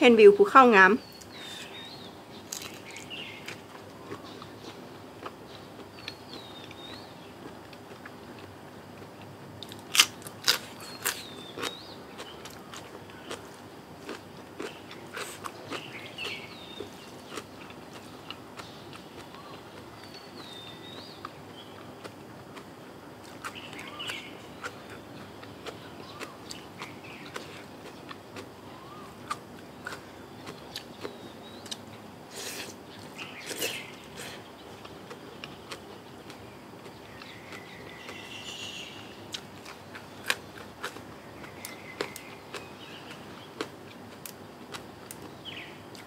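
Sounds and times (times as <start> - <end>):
crunching bites of raw vegetable: 2.4 - 5.4, 9.6 - 19.8
person chewing: 2.5 - 19.9, 21.0 - 38.2, 39.3 - 45.2.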